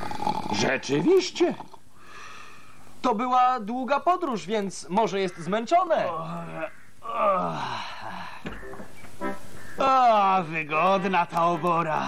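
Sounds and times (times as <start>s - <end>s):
man snoring cartoon style: 0.0s - 0.7s.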